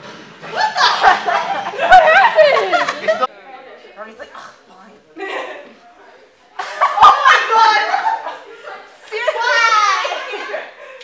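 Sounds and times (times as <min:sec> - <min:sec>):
people talking loudly: 0:01.8 - 0:11.0.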